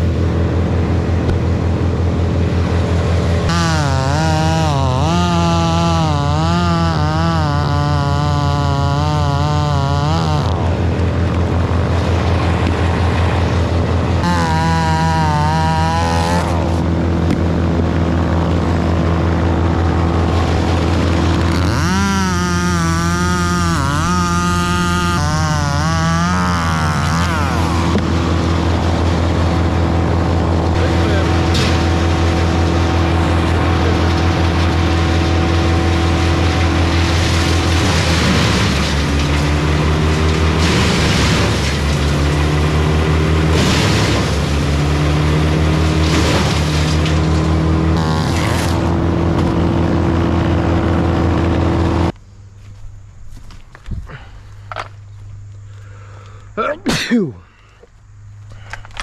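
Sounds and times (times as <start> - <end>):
chainsaw cutting wood: 0.0 - 52.2.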